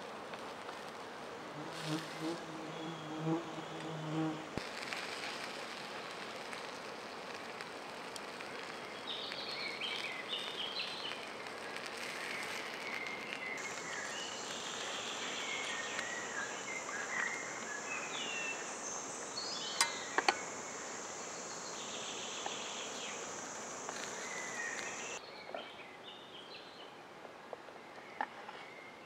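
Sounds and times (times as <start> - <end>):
forest hush: 0.0 - 25.2
insect buzzing: 0.0 - 25.2
high insect trill: 1.5 - 25.2.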